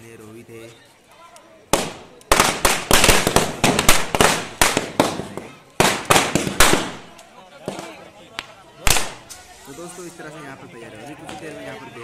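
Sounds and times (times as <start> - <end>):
firecracker bang: 1.7 - 8.0, 8.8 - 9.5
rapid firecracker cracks: 1.7 - 9.5.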